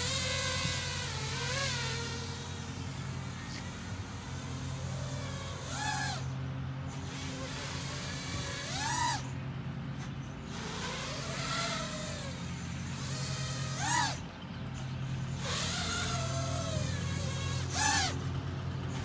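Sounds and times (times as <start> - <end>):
quadcopter propellers buzzing: 0.0 - 19.0.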